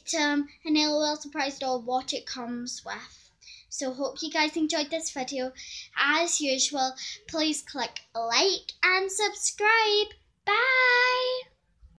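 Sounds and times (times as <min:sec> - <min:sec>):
girl singing a long note: 0:10.5 - 0:11.4.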